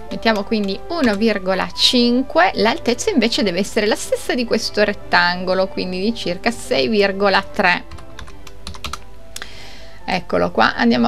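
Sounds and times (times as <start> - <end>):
faint background music: 0.0 - 11.0
computer keyboard keystrokes: 0.6 - 1.3, 7.8 - 9.1.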